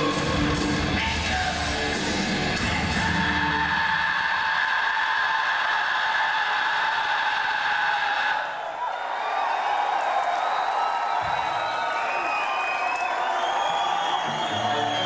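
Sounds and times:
heavy metal band playing live: 0:00.0 - 0:04.4
crowd cheering and whistling: 0:02.6 - 0:15.0.

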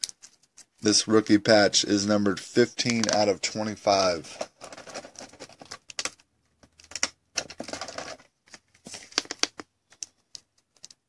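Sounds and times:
plastic clicks and crinkles: 0:00.0 - 0:00.8, 0:02.8 - 0:11.0.

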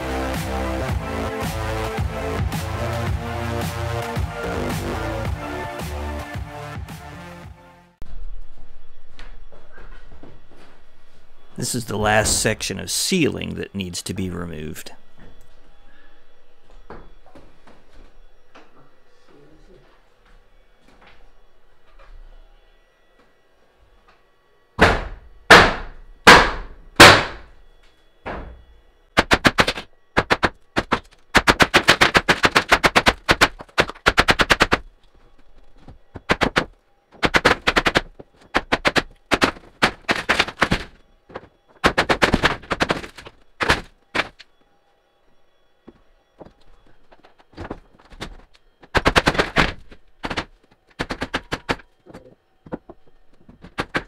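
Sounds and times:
rapid knocking and rattling: 0:29.2 - 0:34.9, 0:36.2 - 0:44.4, 0:47.2 - 0:51.8, 0:52.7 - 0:54.0.

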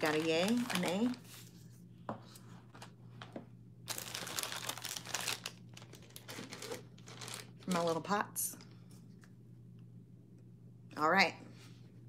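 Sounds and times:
crinkly packaging rustling: 0:00.0 - 0:01.6, 0:02.6 - 0:08.3.

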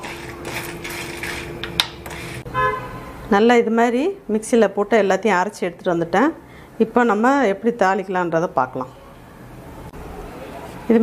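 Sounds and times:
kitchen utensils scraping: 0:00.0 - 0:02.5.

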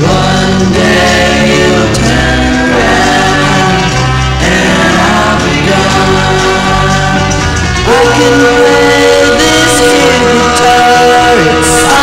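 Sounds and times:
band with steady bass line: 0:00.0 - 0:12.0
group vocals singing: 0:00.0 - 0:12.0.

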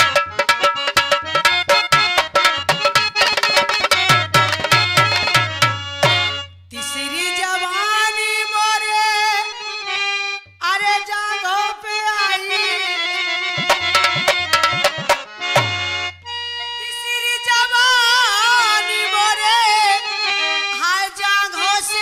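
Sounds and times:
harmonium melody: 0:00.0 - 0:22.0
woman singing: 0:06.7 - 0:09.5, 0:10.6 - 0:13.2, 0:16.8 - 0:22.0.

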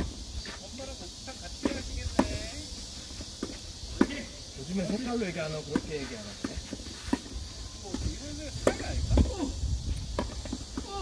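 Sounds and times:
tennis ball hit by rackets: 0:07.9 - 0:09.3.

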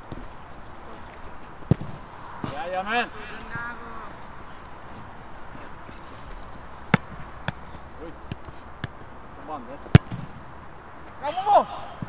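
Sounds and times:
football being kicked: 0:01.7 - 0:02.8, 0:06.9 - 0:09.1, 0:09.8 - 0:10.5.

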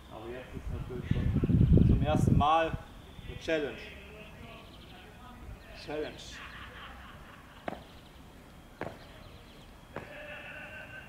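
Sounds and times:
sharp knocks of landings: 0:07.6 - 0:07.9, 0:08.8 - 0:09.2.

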